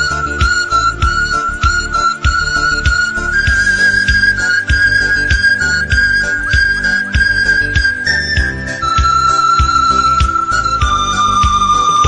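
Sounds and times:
panpipe melody: 0:00.0 - 0:12.0.

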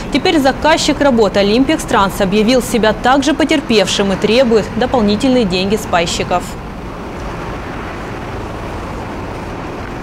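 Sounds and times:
road traffic rumble and hiss: 0:00.0 - 0:10.0.

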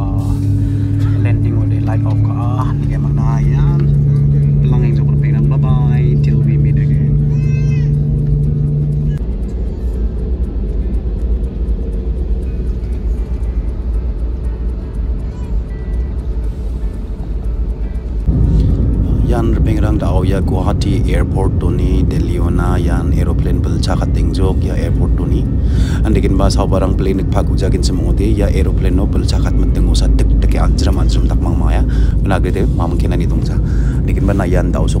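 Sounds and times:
airliner engine and rolling rumble: 0:00.0 - 0:35.0
steady hum: 0:00.0 - 0:35.0
voices: 0:00.0 - 0:35.0.

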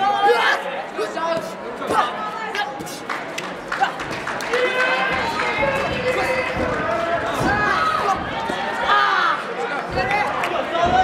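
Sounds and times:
crowd voices in echoing hall: 0:00.0 - 0:11.0.

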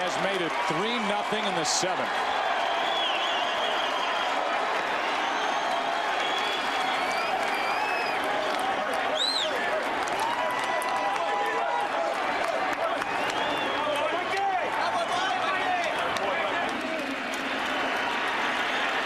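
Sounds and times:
crowd cheering and applause: 0:00.0 - 0:19.0
crowd din of voices: 0:08.3 - 0:19.0.

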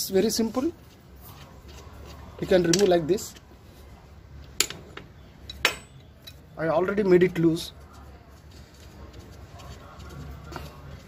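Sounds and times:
metal tools clinking: 0:04.6 - 0:06.5.

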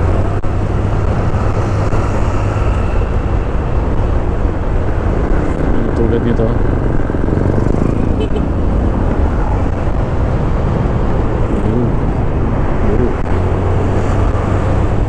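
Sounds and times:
road traffic: 0:00.0 - 0:15.0
wind rush: 0:00.0 - 0:15.0.

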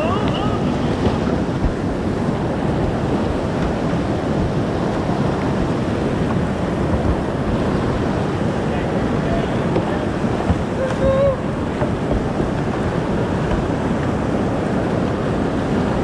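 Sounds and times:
water splashes: 0:00.0 - 0:16.0
whitewater rapids rushing: 0:00.0 - 0:16.0.

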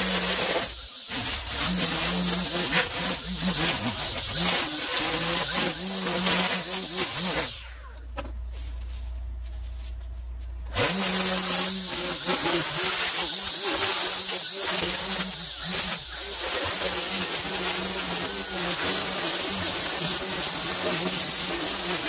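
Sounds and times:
string trimmer cutting grass: 0:00.0 - 0:07.9, 0:10.7 - 0:22.0.

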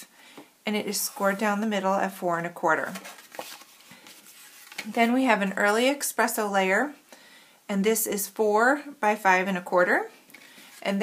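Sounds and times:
paper rustling: 0:02.8 - 0:05.0.

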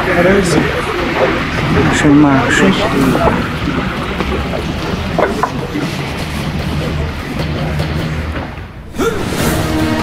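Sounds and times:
low rumble of traffic: 0:00.0 - 0:08.9
small knocks: 0:05.2 - 0:05.6.

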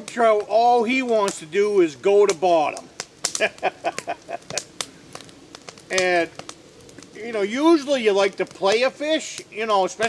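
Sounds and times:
man laughing quietly: 0:03.3 - 0:04.7.

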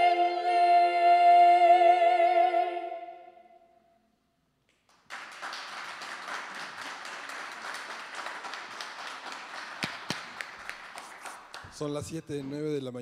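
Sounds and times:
loud separate claps: 0:04.7 - 0:12.5
audience applause: 0:04.9 - 0:12.0.

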